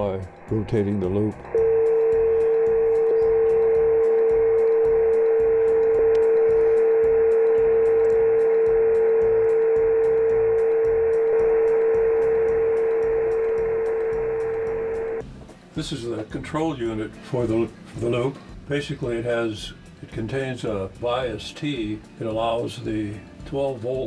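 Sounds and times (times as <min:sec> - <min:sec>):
heterodyne whistle: 0:01.0 - 0:15.2.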